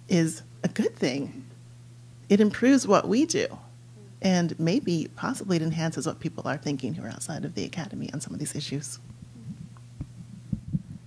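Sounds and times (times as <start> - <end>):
low electrical hum: 0.0 - 11.0
soft low thumps: 9.1 - 11.0.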